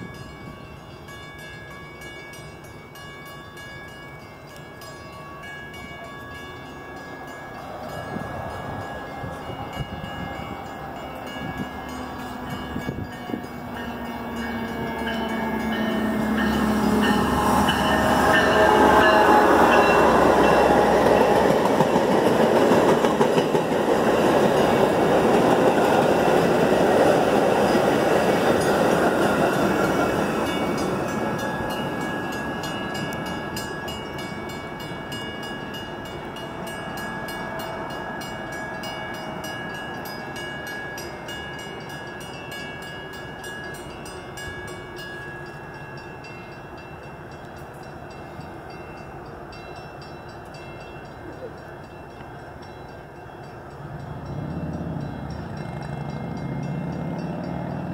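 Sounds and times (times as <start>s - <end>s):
train passing rumble and rattle: 0.0s - 57.9s.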